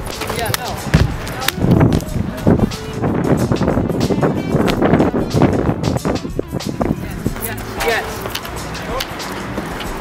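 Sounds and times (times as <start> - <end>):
shoes thudding on concrete: 0.0 - 2.5.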